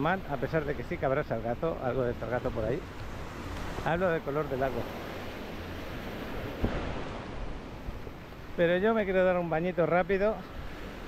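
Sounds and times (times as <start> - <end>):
small waves breaking on sand: 0.0 - 11.0
wind buffeting microphone: 4.7 - 8.6.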